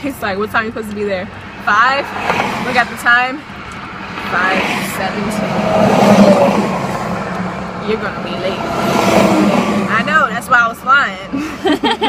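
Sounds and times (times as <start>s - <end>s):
car cabin road drone: 0.0s - 12.0s.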